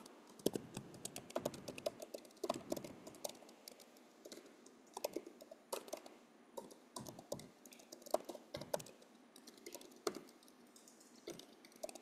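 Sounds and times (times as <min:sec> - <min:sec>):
typing on computer keyboard: 0:00.0 - 0:12.0.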